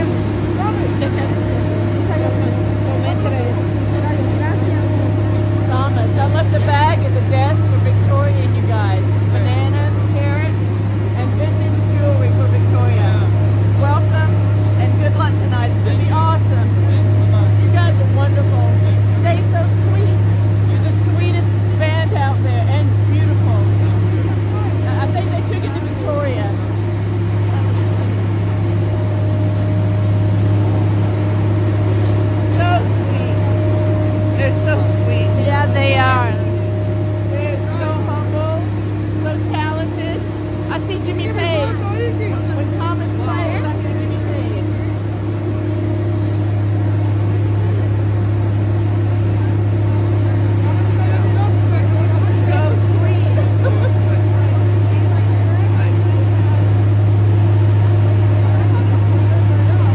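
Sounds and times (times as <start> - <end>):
people chatting: 0.0 - 28.2, 31.5 - 59.9
loud steady low hum: 0.0 - 59.9.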